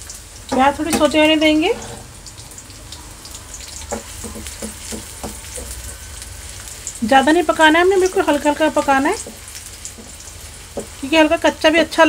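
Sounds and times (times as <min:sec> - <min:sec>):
onions sizzling in oil: 0:00.0 - 0:12.0
spoon knocking against pan: 0:03.9 - 0:05.8, 0:09.2 - 0:11.0.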